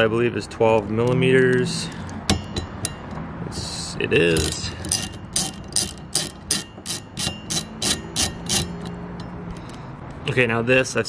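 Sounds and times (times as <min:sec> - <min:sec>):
ratchet wrench clicking: 0:00.6 - 0:03.2, 0:04.1 - 0:10.2.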